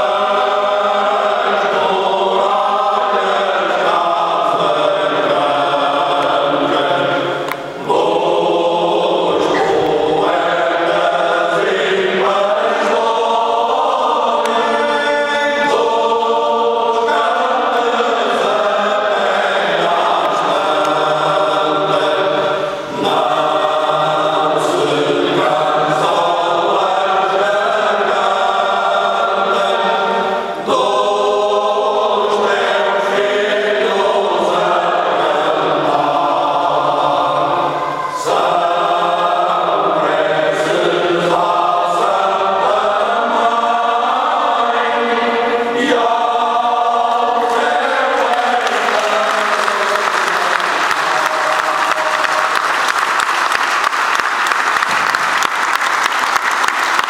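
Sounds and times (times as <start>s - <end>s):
men's choir singing unaccompanied: 0.0s - 53.0s.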